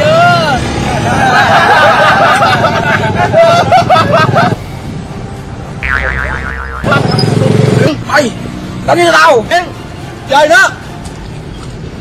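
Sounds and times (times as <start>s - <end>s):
comic boing sound effect: 5.8s - 7.1s.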